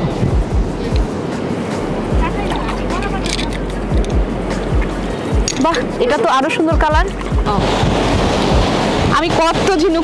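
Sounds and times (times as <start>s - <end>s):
surf washing over sand: 0.0s - 10.0s
wind buffeting microphone: 0.0s - 10.0s.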